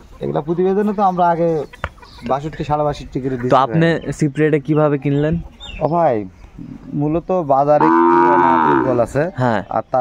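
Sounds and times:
cow mooing: 7.8s - 9.1s.

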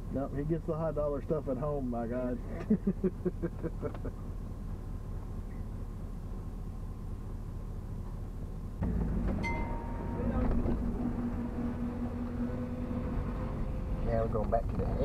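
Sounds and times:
truck engine idling and pulling away: 0.0s - 15.0s.

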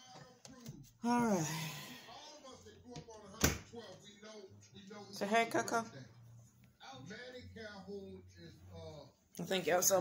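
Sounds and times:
closet door shutting: 3.3s - 3.7s.

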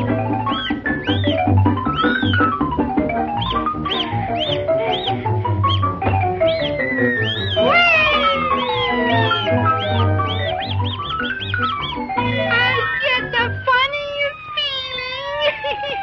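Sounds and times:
cartoon music with swooping glides: 0.0s - 14.1s.

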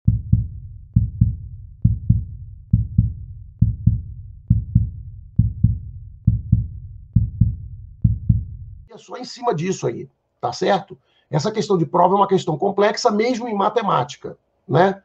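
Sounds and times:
deep heartbeat thumps: 0.1s - 8.9s.

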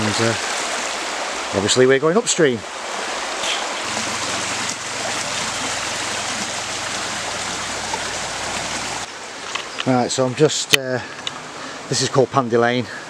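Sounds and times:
stream rushing over stones: 0.0s - 13.0s.

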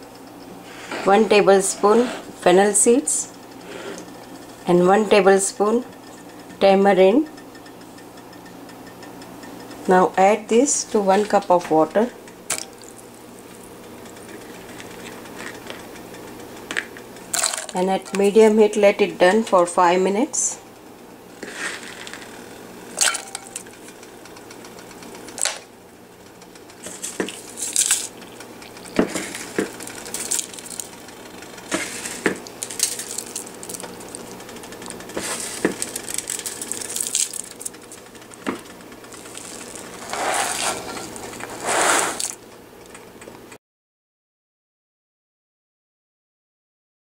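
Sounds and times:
faint steady hum: 0.0s - 43.5s
clinks against metal pot: 23.0s - 23.7s
rustling handling noise: 26.8s - 42.4s.

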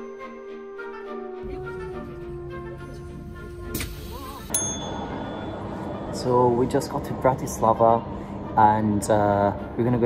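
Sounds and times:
steady background hum: 1.5s - 10.0s
bright ding: 4.5s - 6.0s.

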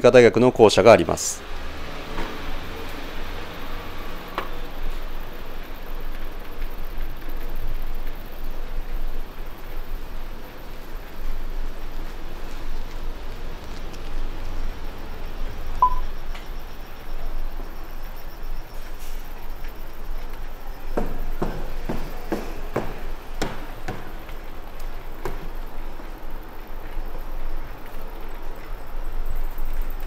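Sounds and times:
city street ambience: 0.0s - 30.0s
short high tone: 15.8s - 16.0s.

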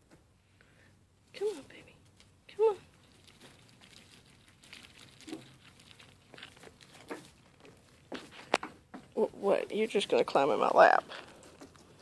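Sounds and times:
goats crunching feed pellets: 2.2s - 9.2s, 10.3s - 12.0s.

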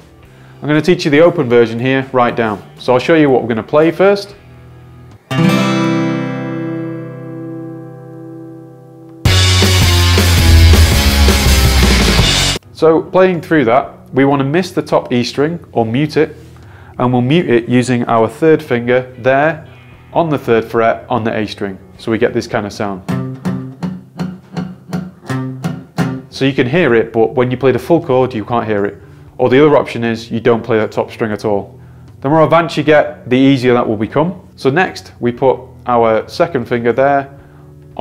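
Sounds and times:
acoustic guitar chord ringing: 4.5s - 12.6s, 19.6s - 20.5s, 23.1s - 26.3s.

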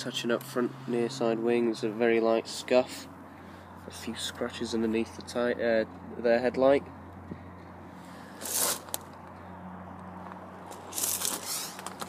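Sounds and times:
scraping rustles of camera handling: 8.1s - 9.3s, 10.7s - 12.0s.

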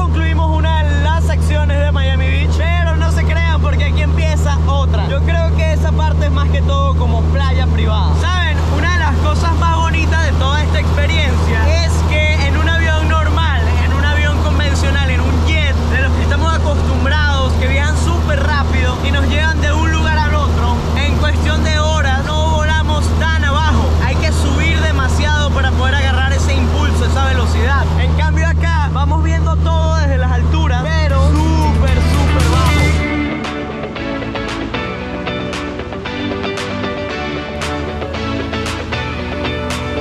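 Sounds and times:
man talking: 0.0s - 33.5s
small plane engine drone: 0.0s - 40.0s.

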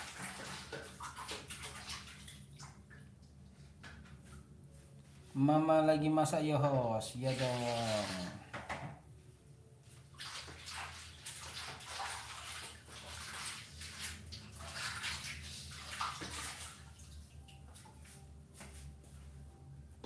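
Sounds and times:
water splashing and running: 0.0s - 3.2s, 7.1s - 8.4s, 10.1s - 18.1s
low steady hum: 0.0s - 10.2s, 12.9s - 20.0s.

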